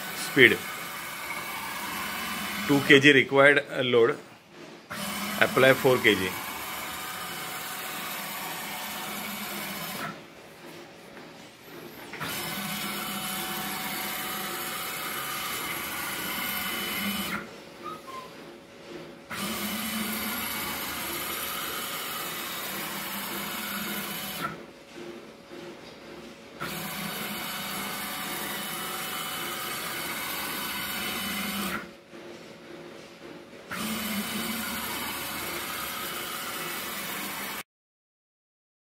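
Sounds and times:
stepper motor mechanical whirr: 0:00.0 - 0:03.3, 0:04.9 - 0:10.2, 0:12.1 - 0:18.4, 0:19.3 - 0:24.6, 0:26.6 - 0:31.9, 0:33.7 - 0:37.6.

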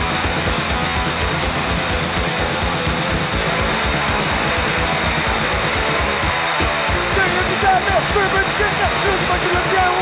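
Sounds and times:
hardcore punk song: 0:00.0 - 0:10.0.

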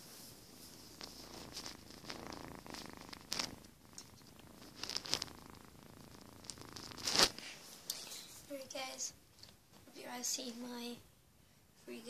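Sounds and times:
cat purring: 0:00.0 - 0:09.6.

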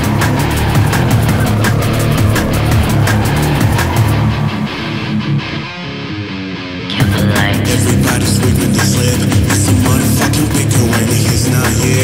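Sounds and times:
steady drum beat: 0:00.0 - 0:04.3, 0:07.0 - 0:12.0
distorted electric guitars: 0:00.0 - 0:12.0.

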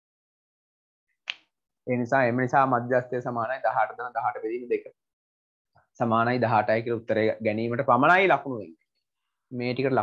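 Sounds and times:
man speaking: 0:01.8 - 0:05.1, 0:09.5 - 0:10.0.

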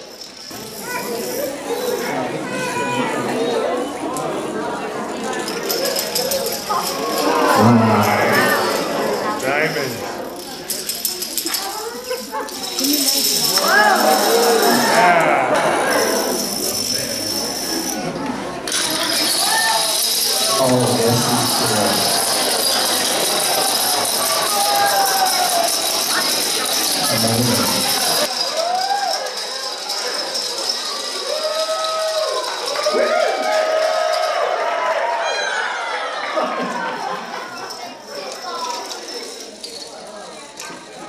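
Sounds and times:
dominoes clattering: 0:00.0 - 0:02.1, 0:05.3 - 0:18.0, 0:18.7 - 0:34.3, 0:37.6 - 0:41.0
spectators exclaiming: 0:05.9 - 0:10.2, 0:13.3 - 0:17.2, 0:19.0 - 0:29.4, 0:31.2 - 0:37.7
people crying out: 0:06.2 - 0:10.1, 0:13.5 - 0:17.2, 0:19.3 - 0:29.2.

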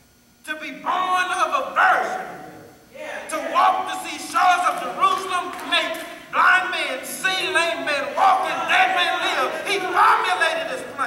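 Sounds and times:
man preaching in shouted voice: 0:00.5 - 0:02.3, 0:03.0 - 0:11.0.

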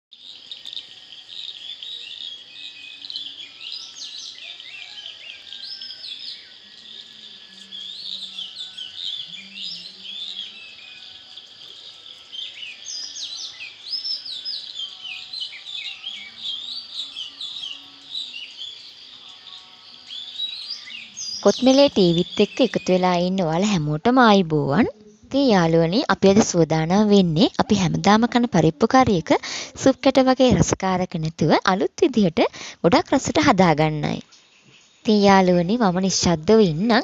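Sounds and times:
birds chirping and calling: 0:00.2 - 0:24.0.

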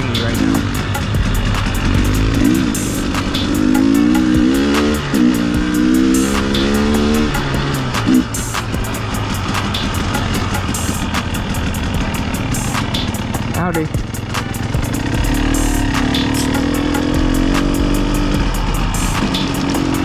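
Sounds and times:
dirt bike engine running: 0:00.0 - 0:20.0.

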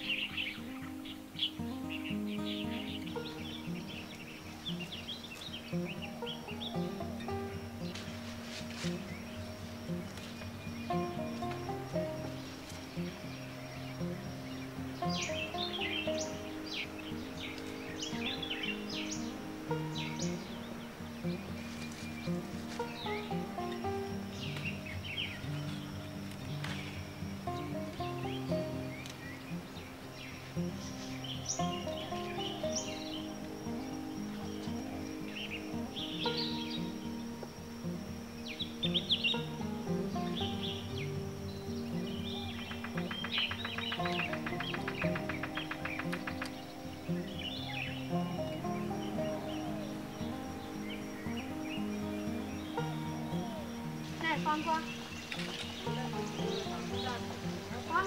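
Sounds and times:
birds chirping: 0:00.0 - 0:58.0
gentle background music: 0:00.0 - 0:58.0.

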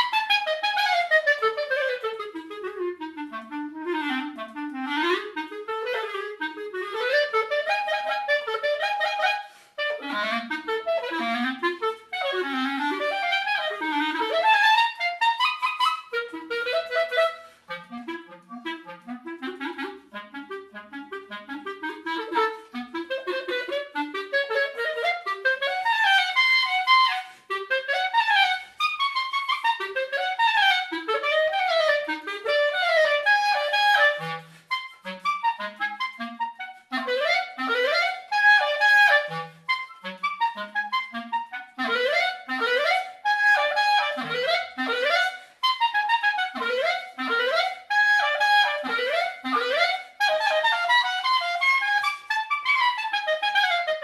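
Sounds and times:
solo clarinet playing: 0:00.0 - 0:54.0.

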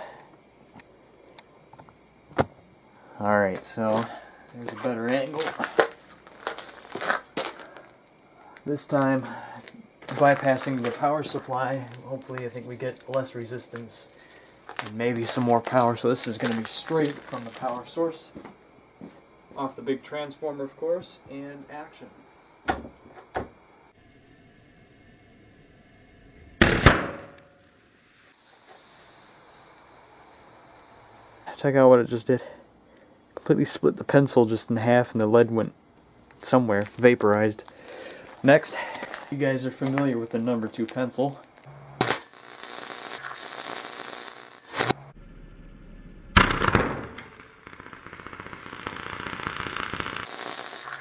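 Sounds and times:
pencil lead arcing and exploding: 0:42.0 - 0:45.0, 0:46.3 - 0:51.0.

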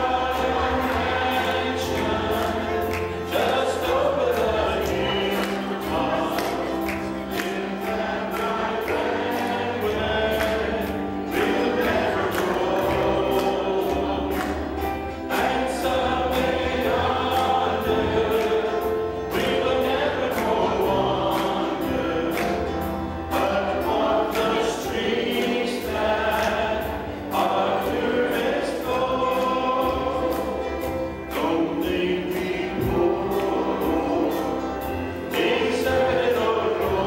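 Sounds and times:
instrumental accompaniment with beat: 0:00.0 - 0:37.0
voices singing a gospel hymn: 0:00.0 - 0:37.0.

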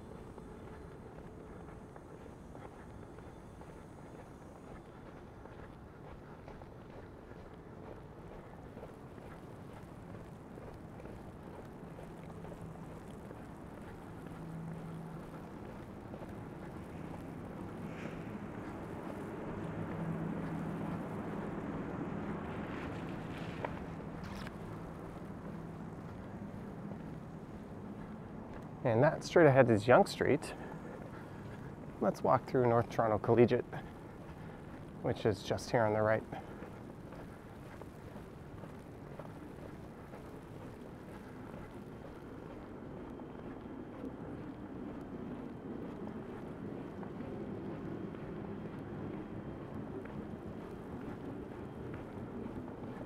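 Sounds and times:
distant traffic rumble: 0:00.0 - 0:53.0
low engine hum: 0:00.0 - 0:53.0.

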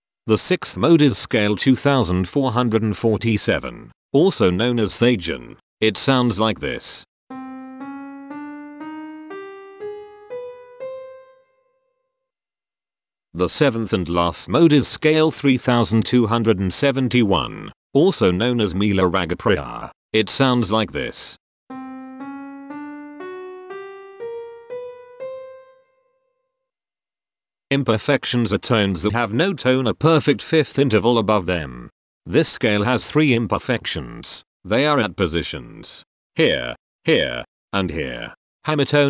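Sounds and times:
piano playing a rising scale: 0:07.3 - 0:12.0, 0:21.7 - 0:26.4.

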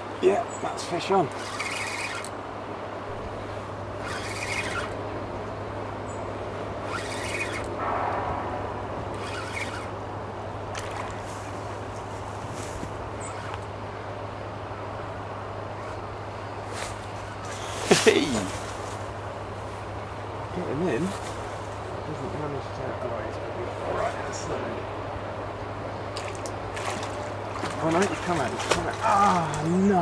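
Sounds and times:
steady low hum: 0:00.0 - 0:30.0
fishing reel winding: 0:01.3 - 0:02.3, 0:03.4 - 0:05.0, 0:06.9 - 0:07.7, 0:09.2 - 0:09.9.

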